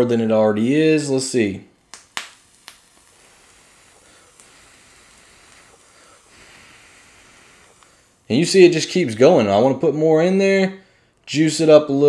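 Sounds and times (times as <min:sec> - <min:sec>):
faint airy hiss: 0:00.0 - 0:12.0.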